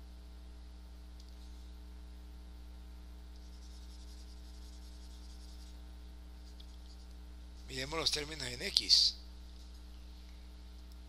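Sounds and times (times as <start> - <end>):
electrical mains hum: 0.0 - 11.0
stylus scratching on tablet screen: 3.4 - 5.8, 6.4 - 8.4.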